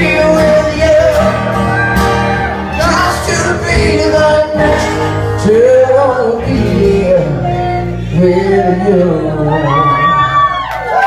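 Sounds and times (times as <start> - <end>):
strummed acoustic guitar: 0.0 - 9.4
man singing: 0.0 - 10.6
live rock band: 0.0 - 11.0.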